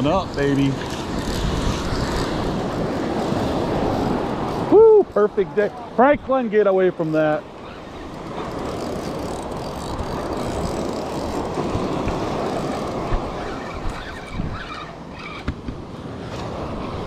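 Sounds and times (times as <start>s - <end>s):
wind on microphone: 0.0s - 6.3s, 7.4s - 17.0s
surf rushing: 0.0s - 17.0s.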